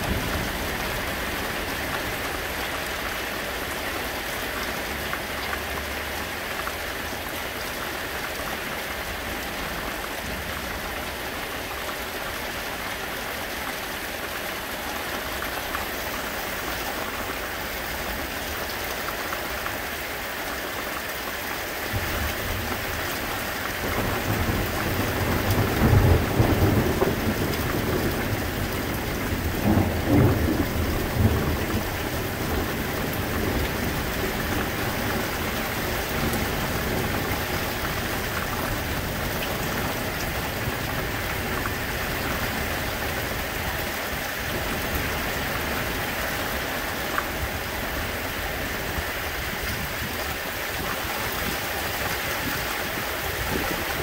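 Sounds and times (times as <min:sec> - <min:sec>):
thunder rumbling: 0:00.0 - 0:02.6, 0:21.9 - 0:48.5
rain hissing: 0:00.0 - 0:54.0.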